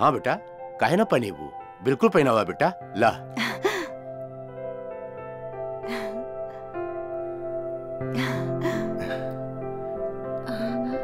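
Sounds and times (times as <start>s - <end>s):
soft film score: 0.0s - 11.0s
breathy gasp: 8.2s - 9.4s.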